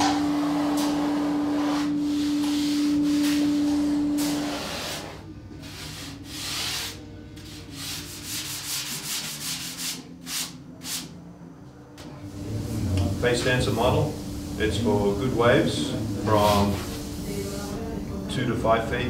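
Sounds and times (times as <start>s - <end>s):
loud steady hum: 0.0s - 19.0s.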